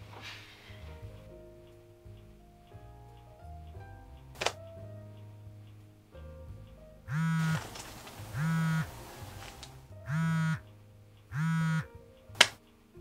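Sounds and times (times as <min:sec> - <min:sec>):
sharp click: 0:04.4 - 0:04.8, 0:11.6 - 0:12.6
mobile phone buzzing on vibrate: 0:07.1 - 0:07.6, 0:08.4 - 0:08.9, 0:10.1 - 0:10.6, 0:11.4 - 0:11.9.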